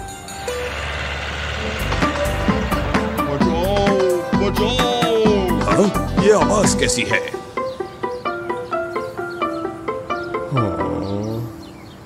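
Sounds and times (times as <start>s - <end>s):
cartoon bulldozer engine rumble: 0.0s - 6.8s
background music: 0.0s - 12.0s.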